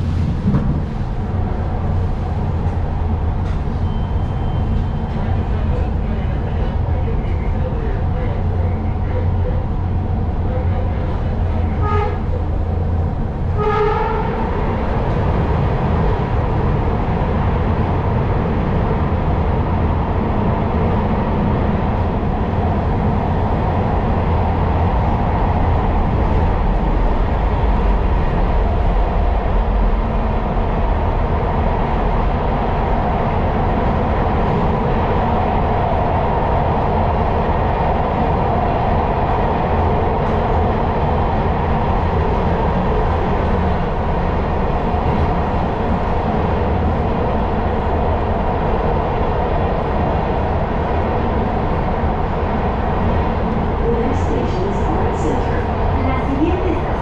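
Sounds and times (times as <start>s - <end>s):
subway car low rumble: 0.0s - 57.0s.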